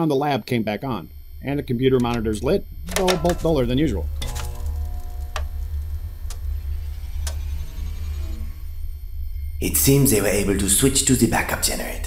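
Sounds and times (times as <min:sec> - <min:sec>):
held electronic tones: 0:00.0 - 0:11.8
low electrical hum: 0:00.0 - 0:12.0
tone falling in pitch: 0:00.5 - 0:09.4.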